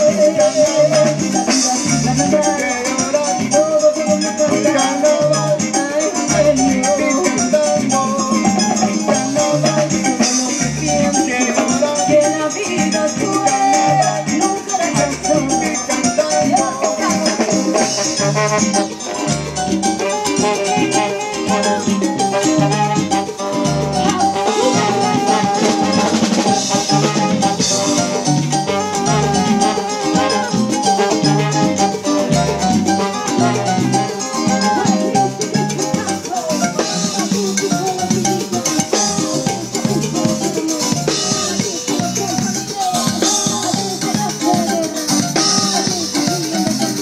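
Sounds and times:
live salsa band playing: 0.0 - 47.0.

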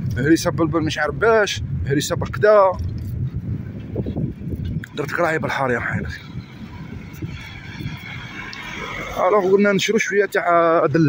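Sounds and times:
wind and road noise: 0.0 - 11.0
man speaking: 0.1 - 2.8, 4.8 - 6.3, 9.2 - 11.0.

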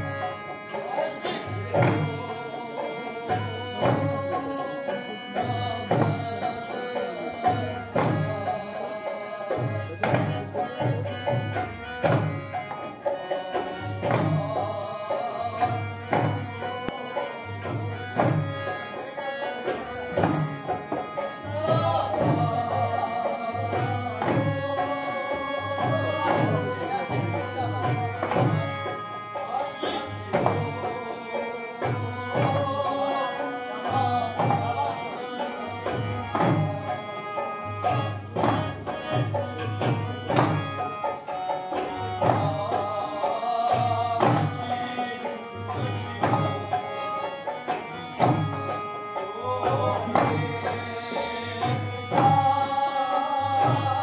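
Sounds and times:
wavering folk melody: 0.0 - 54.0
hand drum beats: 1.2 - 8.5, 9.5 - 14.8, 19.6 - 29.0, 35.9 - 42.9, 43.7 - 46.8.

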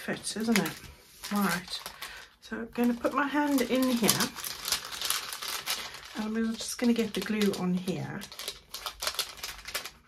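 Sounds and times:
paper bag crinkling: 0.0 - 10.0.

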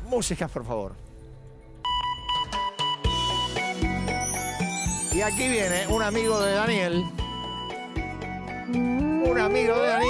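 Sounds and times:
electronic jingle pulsing tone: 8.6 - 10.0.

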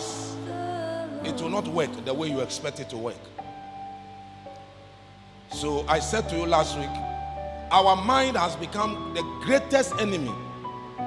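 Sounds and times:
soft sustained background music: 0.0 - 11.0.

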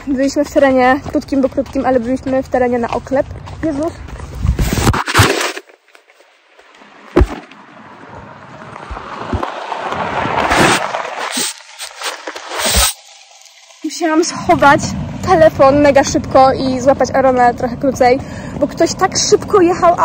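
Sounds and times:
car driving fast: 7.7 - 11.3.

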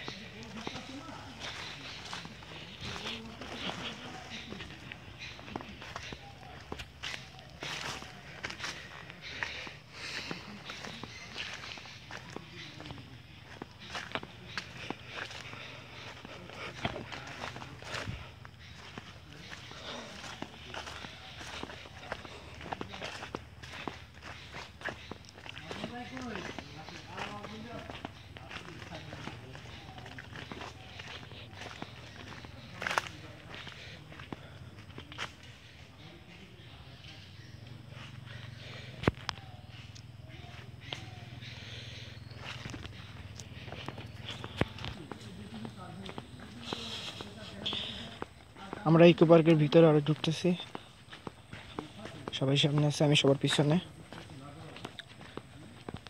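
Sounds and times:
footsteps on dry leaves: 0.0 - 37.4, 38.0 - 56.0.

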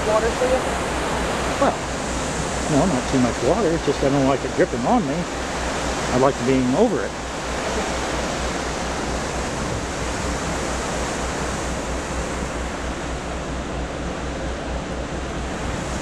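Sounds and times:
churning sea water: 0.0 - 16.0
low fluttering rumble: 0.0 - 16.0.

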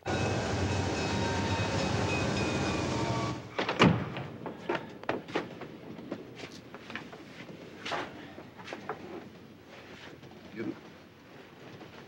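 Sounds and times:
passenger train running: 0.0 - 3.6.

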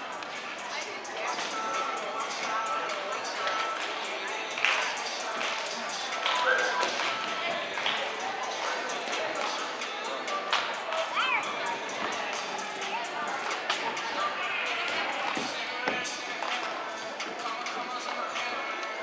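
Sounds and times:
cheerleading music: 0.0 - 19.0
people shouting: 11.0 - 11.5.

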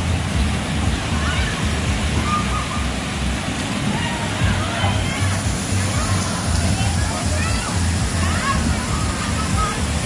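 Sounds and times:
water pouring and splashing: 0.0 - 10.0
people shouting in water: 1.1 - 3.0, 3.8 - 10.0.

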